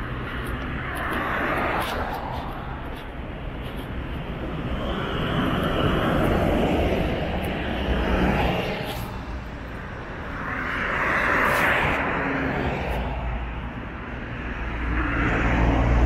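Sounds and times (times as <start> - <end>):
road traffic passing: 0.0 - 16.0.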